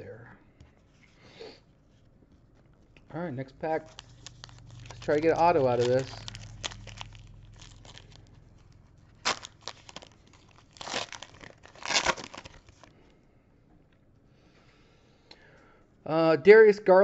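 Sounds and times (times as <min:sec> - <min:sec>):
foil wrapper ripping: 0:03.7 - 0:12.9
foil wrapper crinkling: 0:03.7 - 0:13.0.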